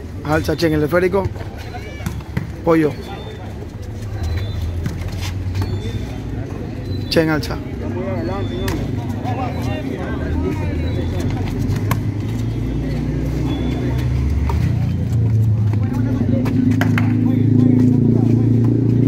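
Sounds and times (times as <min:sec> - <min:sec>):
spectators' voices: 0:00.0 - 0:19.0
vehicle engine humming: 0:00.0 - 0:19.0.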